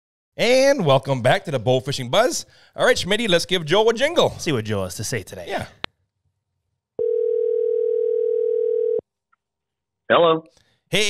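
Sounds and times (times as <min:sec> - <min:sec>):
telephone ringback tone: 0:07.0 - 0:09.0.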